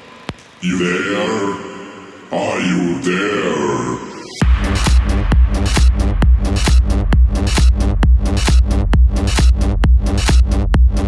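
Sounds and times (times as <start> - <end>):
low drawn-out vocal sample: 0.6 - 6.2.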